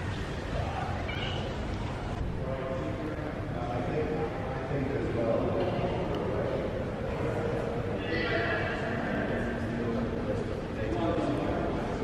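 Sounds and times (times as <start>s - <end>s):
indistinct voices in echoing hall: 0.0s - 12.0s.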